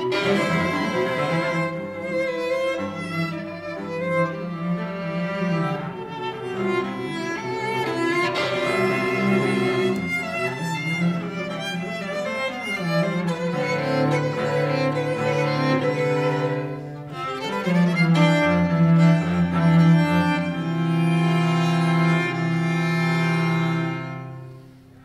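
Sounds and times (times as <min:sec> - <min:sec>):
cello low notes: 0:00.0 - 0:25.0
violin playing: 0:00.0 - 0:25.0.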